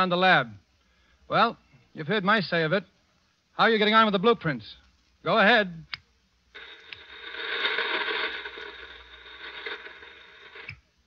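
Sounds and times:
faint steady tones: 5.9 - 11.0
radio static hiss: 6.5 - 11.0.

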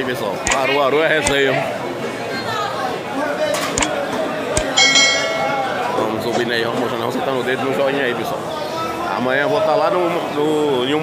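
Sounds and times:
crowd chatter: 0.0 - 11.0
sharp button clicks: 4.6 - 5.6
bright bell chime: 4.8 - 6.0.

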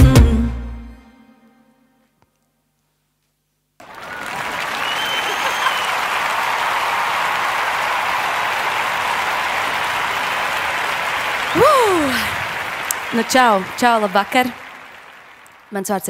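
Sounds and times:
audience applauding: 3.8 - 15.8
person crying out: 11.6 - 12.3.

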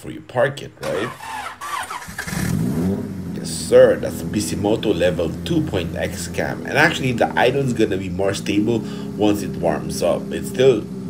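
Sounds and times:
car engine cranking and starting: 0.8 - 11.0.

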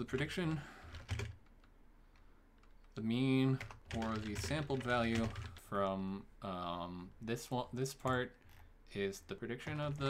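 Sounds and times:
soft keyboard keystrokes: 0.0 - 6.0, 7.8 - 8.7.

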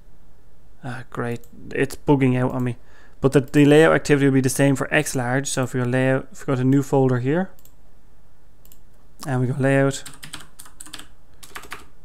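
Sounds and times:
keyboard keystrokes: 10.0 - 11.9.

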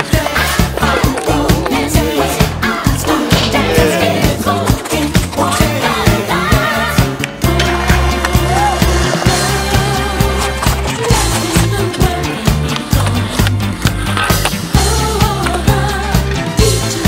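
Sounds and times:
music with beat and bass line: 0.0 - 17.0
skateboard wheels rolling on concrete: 0.0 - 17.0
skateboard landing: 7.0 - 11.5.

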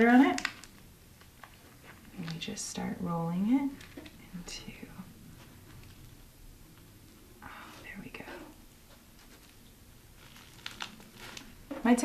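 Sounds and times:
nori sheet crinkling: 0.1 - 2.8, 3.6 - 4.4, 5.2 - 7.8, 8.8 - 12.0
small sharp crackles: 0.2 - 2.5, 9.2 - 12.0.

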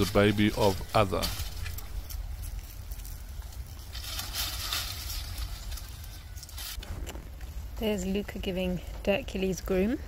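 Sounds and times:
low rumble: 0.0 - 7.8.

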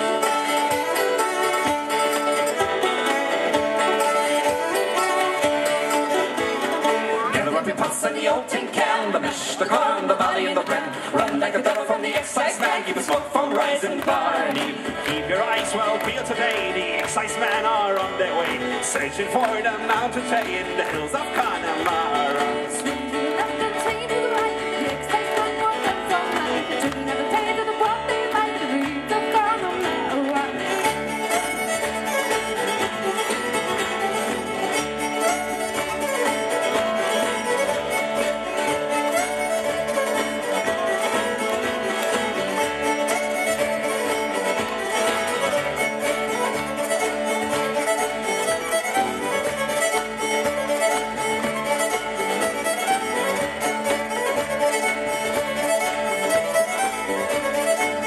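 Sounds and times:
fiddle: 0.0 - 58.0
folk band playing: 0.0 - 58.0.

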